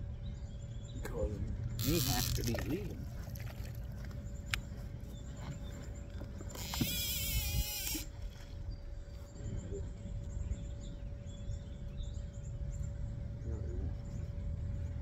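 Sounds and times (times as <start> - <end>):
reel spool whirring: 1.7 - 4.9, 6.0 - 8.4
fishing reel click: 1.8 - 2.6, 6.5 - 8.1
wind on microphone: 6.4 - 12.0.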